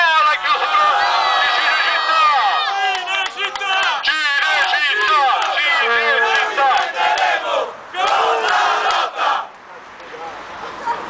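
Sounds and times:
crowd shouting: 0.0s - 9.5s
hand clapping: 2.9s - 4.0s.

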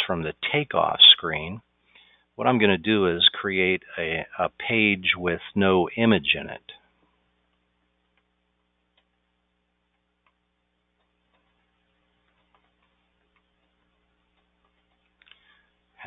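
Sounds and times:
faint steady hum: 0.0s - 16.0s
computer keyboard typing: 11.0s - 15.5s.

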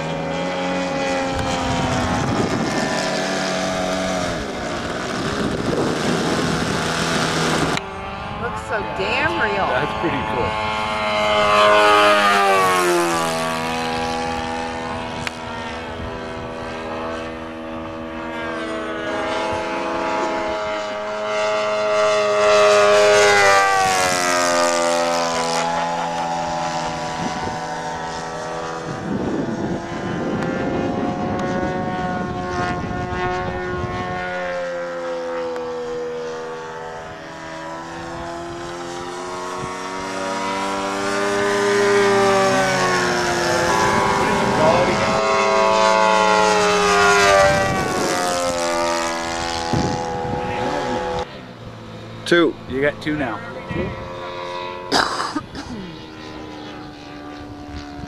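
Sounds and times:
model airplane engine and propeller: 0.0s - 58.0s.

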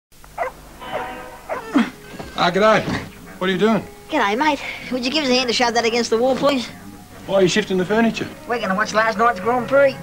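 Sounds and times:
dog whining and yelping: 0.4s - 1.9s.

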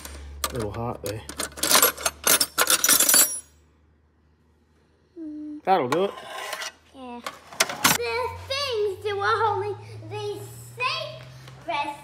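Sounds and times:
spanners clinking in metal toolbox: 0.0s - 3.6s.

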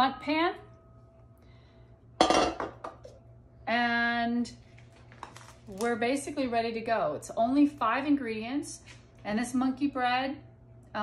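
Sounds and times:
metal pan clattering on tiles: 2.2s - 3.1s.

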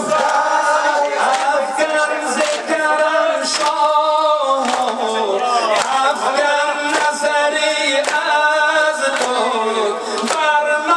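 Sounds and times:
man singing devotional song: 0.0s - 10.9s.

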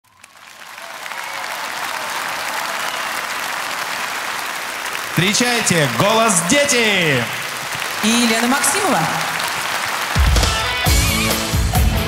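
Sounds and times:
audience applauding: 0.0s - 11.9s.

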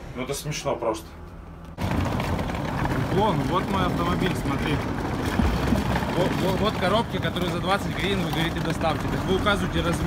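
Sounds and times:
wind buffeting microphone: 1.8s - 8.4s.

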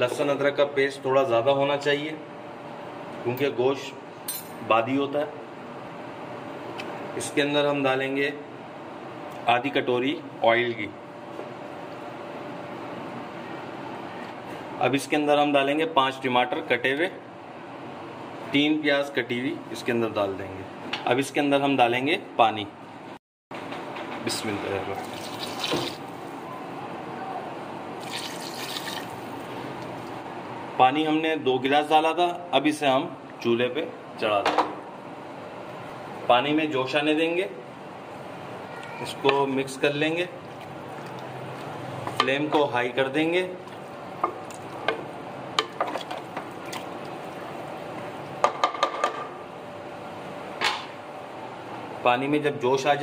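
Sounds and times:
water pouring into pot: 25.0s - 26.1s, 28.0s - 29.3s.

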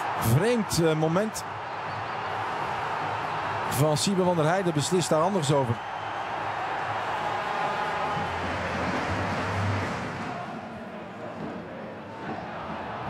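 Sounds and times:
stadium crowd cheering: 0.0s - 13.0s.

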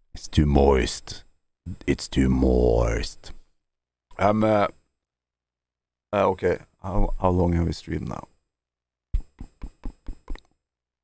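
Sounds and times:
quick knocks: 9.1s - 10.4s.

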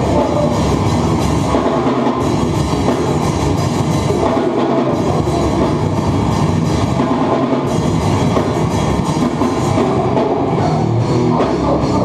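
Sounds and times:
live hardcore band playing loud: 0.0s - 12.0s.

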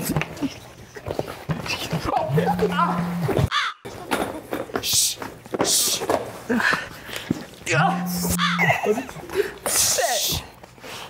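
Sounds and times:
people crying out and grunting: 2.1s - 3.5s, 7.7s - 9.6s
steady buzz: 2.2s - 3.5s, 7.7s - 9.0s.

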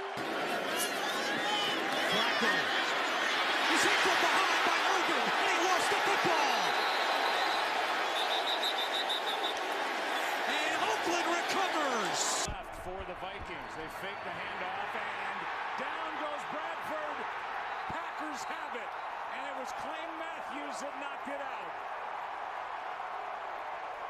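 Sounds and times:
stadium crowd roaring: 0.0s - 24.0s.

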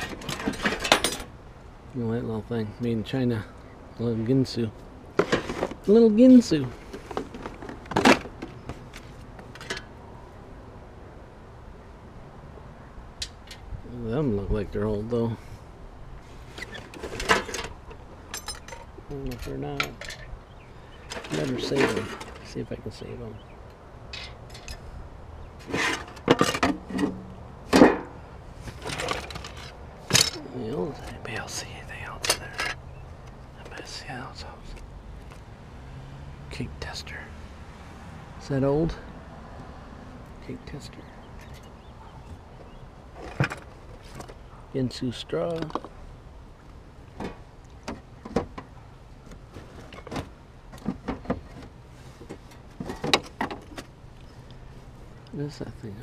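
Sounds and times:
rummaging through junk in metal dumpster: 0.0s - 1.3s, 5.2s - 5.9s, 6.8s - 8.8s, 16.5s - 18.9s, 21.1s - 22.6s, 25.6s - 30.4s.

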